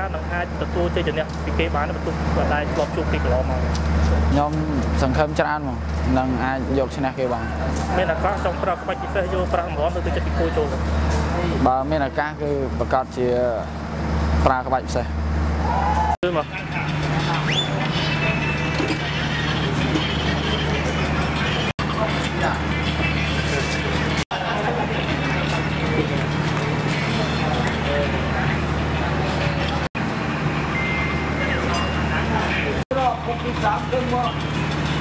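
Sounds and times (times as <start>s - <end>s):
indistinct chatter of people: 0.0s - 11.8s, 15.7s - 35.0s
man talking: 0.0s - 13.7s, 16.2s - 17.5s
truck engine idling hum: 0.0s - 35.0s.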